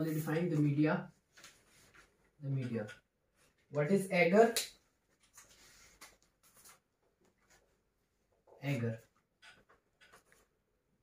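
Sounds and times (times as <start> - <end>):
person speaking: 0.0 - 1.2, 2.4 - 3.0, 3.7 - 4.8, 8.5 - 9.1
marker scratching on whiteboard: 9.4 - 10.5.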